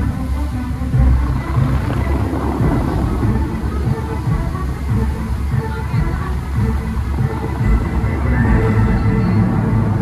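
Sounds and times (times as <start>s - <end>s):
fountain show music: 0.0s - 10.0s
fountain water jets splashing: 0.0s - 10.0s
heavy low rumble: 0.0s - 10.0s.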